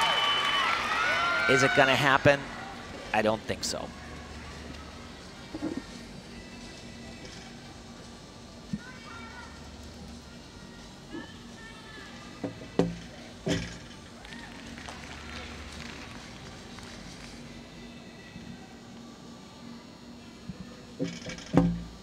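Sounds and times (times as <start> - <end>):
arena crowd murmur: 0.0 - 21.0
faint music: 0.0 - 22.0.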